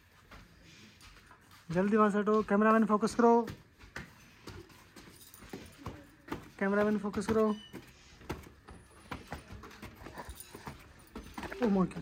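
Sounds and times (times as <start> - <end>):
faint footsteps on concrete stairs: 0.0 - 12.0.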